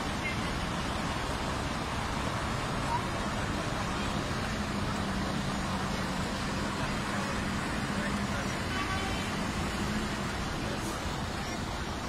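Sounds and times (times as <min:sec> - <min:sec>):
truck engine running: 0:00.0 - 0:12.0.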